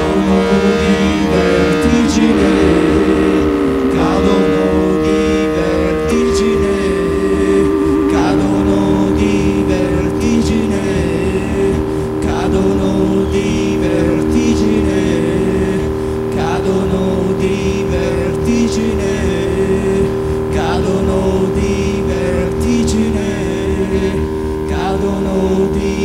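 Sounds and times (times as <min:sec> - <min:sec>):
sustained keyboard chords: 0:00.0 - 0:26.0.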